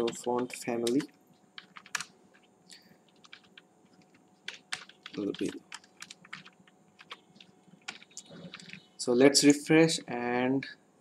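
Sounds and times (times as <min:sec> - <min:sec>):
typing on computer keyboard: 0:00.0 - 0:02.5, 0:03.1 - 0:08.9.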